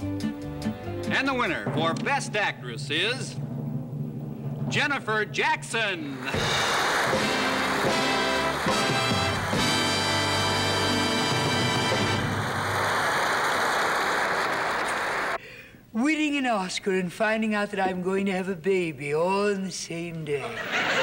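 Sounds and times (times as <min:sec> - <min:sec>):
studio audience applause: 0:06.2 - 0:15.4
orchestra playing a fanfare: 0:06.3 - 0:12.7.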